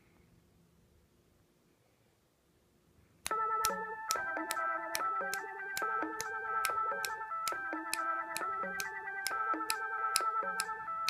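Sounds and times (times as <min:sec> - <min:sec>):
finger snaps: 0:03.3 - 0:10.8
looping electronic synth pattern: 0:03.3 - 0:11.0.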